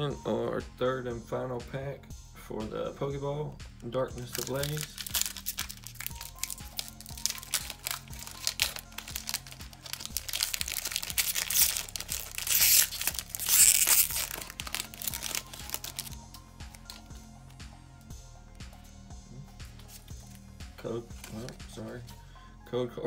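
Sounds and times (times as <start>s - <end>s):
quiet background music: 0.0s - 23.0s
foil wrapper crinkling and tearing: 4.3s - 17.1s.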